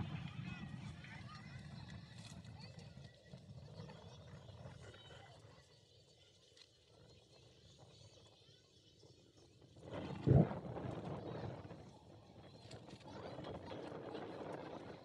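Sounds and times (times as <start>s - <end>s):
faint distant voices: 0.0s - 15.0s.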